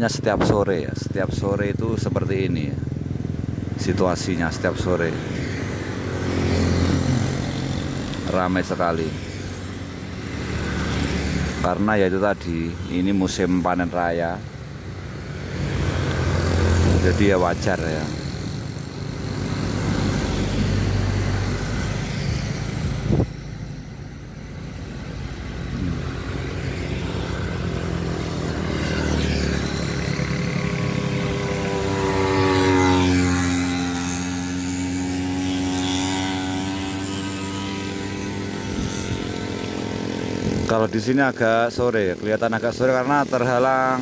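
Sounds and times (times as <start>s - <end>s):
motorcycles passing: 0.0s - 44.0s
minivan passing: 0.6s - 44.0s.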